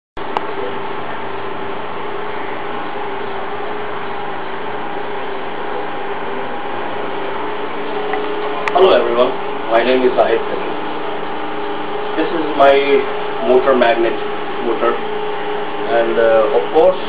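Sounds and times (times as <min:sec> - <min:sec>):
steady hum with hiss: 0:00.2 - 0:17.0.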